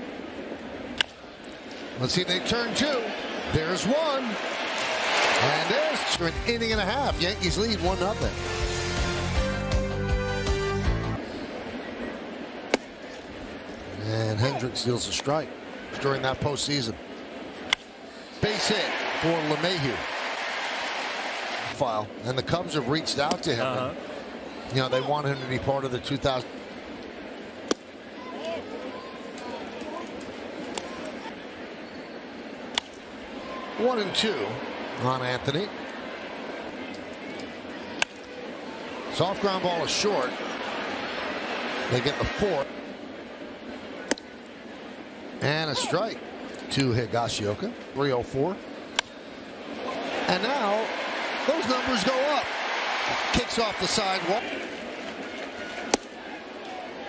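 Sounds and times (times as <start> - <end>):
bat cracking: 54.7 - 56.2.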